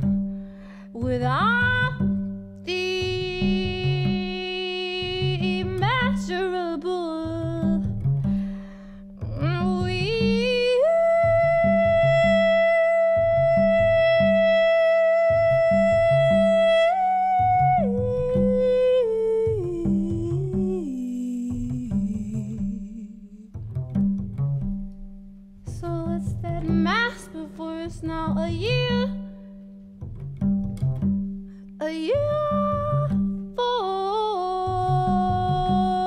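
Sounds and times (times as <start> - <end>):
plucked double bass: 0.0 - 36.0
woman singing: 0.9 - 8.0, 9.3 - 23.6, 25.7 - 29.5, 31.8 - 36.0.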